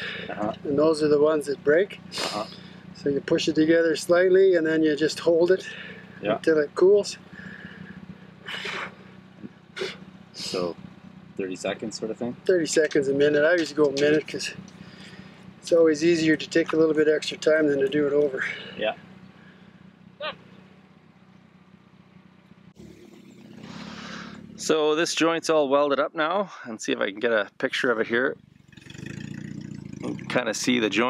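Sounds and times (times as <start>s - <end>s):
low engine hum: 0.0s - 25.5s, 28.0s - 31.0s
person sniffing sharply: 2.1s - 2.8s, 9.8s - 10.0s, 23.6s - 24.4s
rising hiss: 22.8s - 24.5s.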